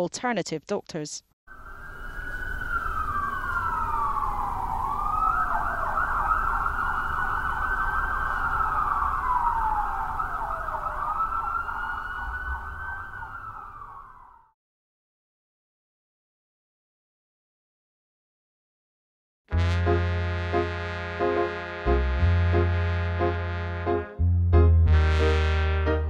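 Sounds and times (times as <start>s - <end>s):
emergency siren wailing: 1.5s - 14.6s.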